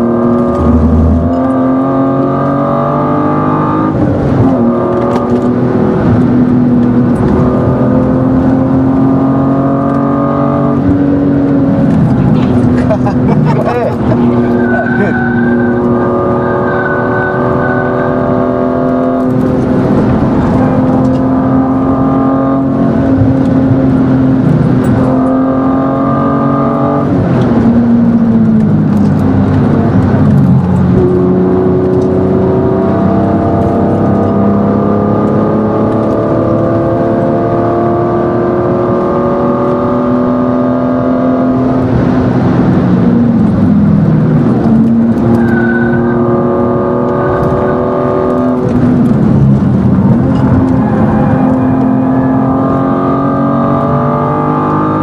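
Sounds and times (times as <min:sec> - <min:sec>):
car engine revving high: 0:00.0 - 0:55.0.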